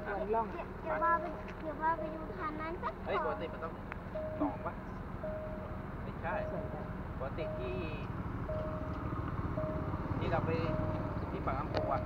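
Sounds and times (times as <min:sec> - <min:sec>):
motorcycle engines rumbling: 0:00.0 - 0:12.0
level-crossing warning beeps: 0:01.2 - 0:12.0.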